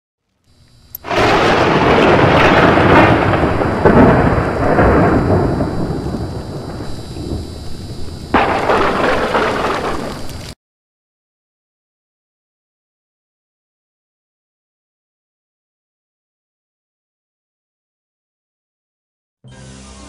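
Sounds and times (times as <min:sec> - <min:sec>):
sudden thunderclap: 0:01.1 - 0:10.4
rolling thunder rumble: 0:01.1 - 0:10.5.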